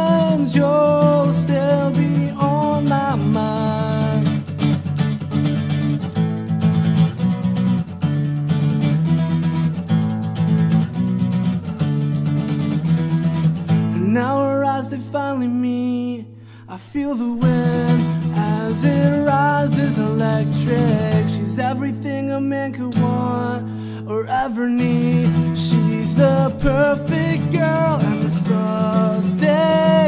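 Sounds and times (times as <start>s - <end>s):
man singing: 0.0s - 4.8s, 13.8s - 30.0s
acoustic guitar strumming: 0.0s - 30.0s.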